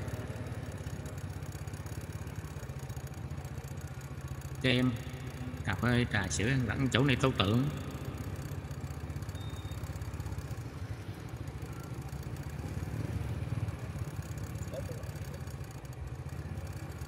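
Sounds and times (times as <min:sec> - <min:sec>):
motorbike engine running: 0:00.0 - 0:17.0
faint background hubbub: 0:09.1 - 0:17.0.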